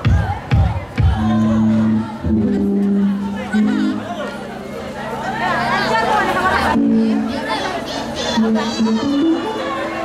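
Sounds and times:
crowd chatter and calls: 0.0 - 10.0.

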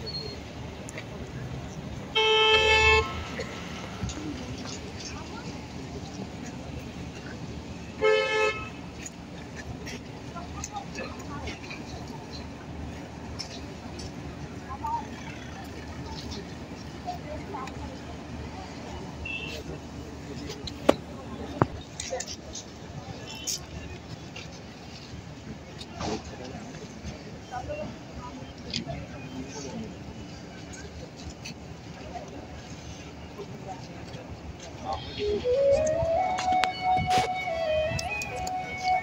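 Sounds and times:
faint crowd voices: 0.0 - 39.0
low rumble of traffic: 0.0 - 39.0.

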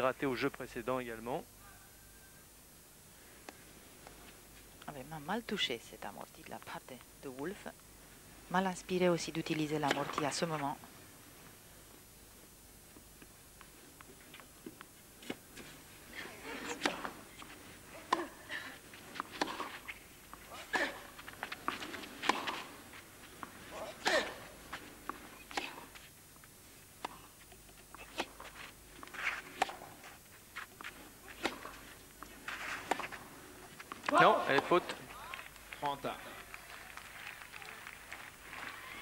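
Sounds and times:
tennis ball hits: 16.6 - 17.2, 19.2 - 20.0, 20.8 - 22.7, 31.3 - 31.9, 33.9 - 35.0.

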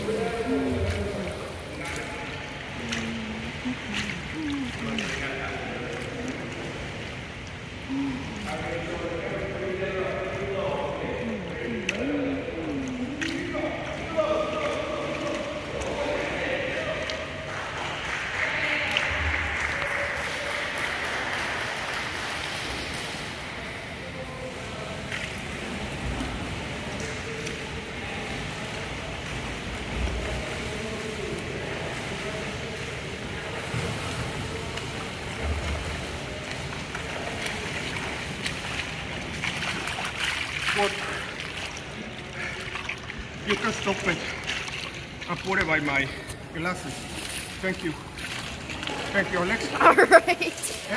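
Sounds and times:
distant echoing voices: 0.0 - 50.9
water splashing from swimming strokes: 0.0 - 50.9.

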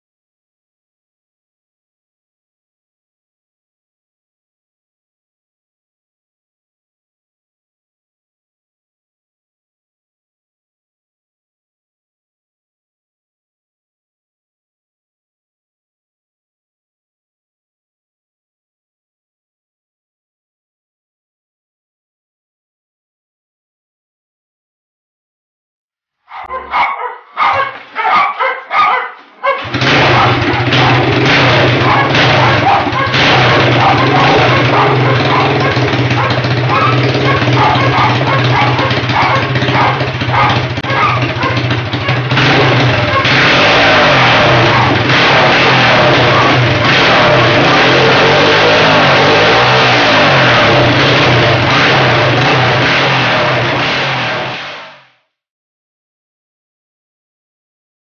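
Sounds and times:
motorcycle engine starting and revving: 29.2 - 55.0.

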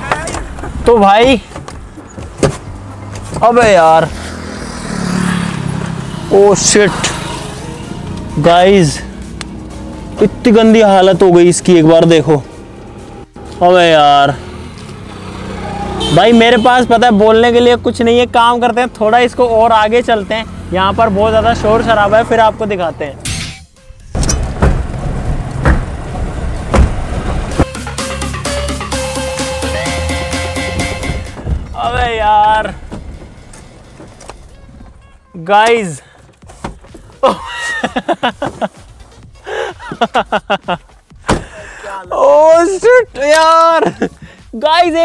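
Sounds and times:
engine humming: 0.0 - 40.1
music: 7.6 - 13.3, 23.5 - 24.4, 27.5 - 31.7, 36.3 - 45.0
car driving on shredded tyre: 24.4 - 27.6.

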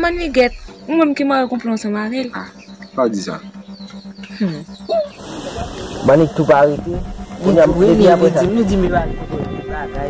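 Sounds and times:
background hiss: 4.9 - 9.2.

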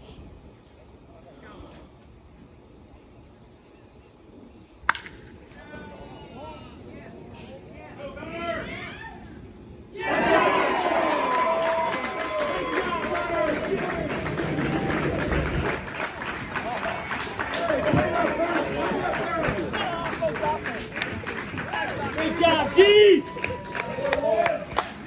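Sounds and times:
bat hitting baseball: 4.9 - 5.3
people shouting: 10.0 - 15.3, 16.7 - 20.4
crowd cheering and yelling: 10.0 - 25.0.

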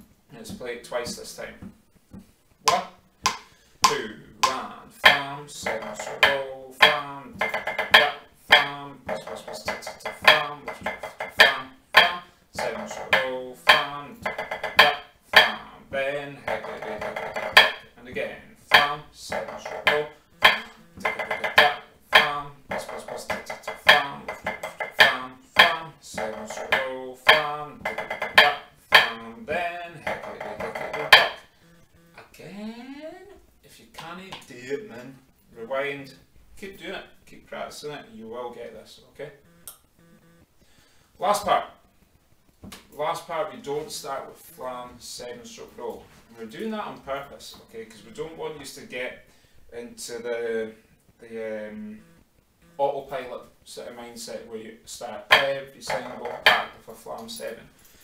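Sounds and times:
drumsticks on practice pad: 0.5 - 32.3, 55.1 - 58.0.

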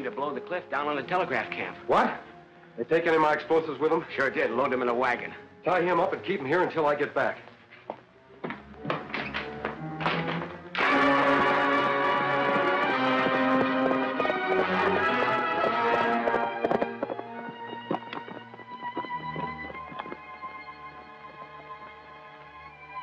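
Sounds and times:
orchestral film music: 0.0 - 7.5, 8.1 - 23.0
horse hoofbeats: 7.8 - 22.6.

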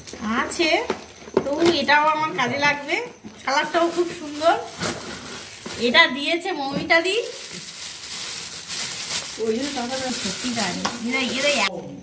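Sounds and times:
plastic bag crinkling: 3.5 - 11.8.

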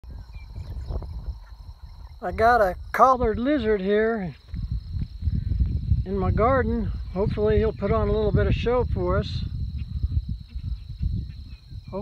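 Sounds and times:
distant birds chirping: 0.0 - 5.9
wind buffeting microphone: 0.0 - 12.0.

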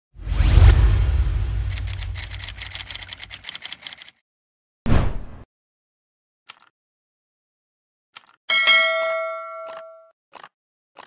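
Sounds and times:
deep rumble: 0.3 - 2.4.

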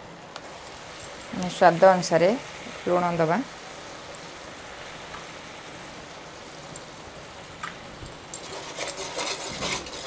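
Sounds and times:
paste frying and sizzling: 0.0 - 10.0.

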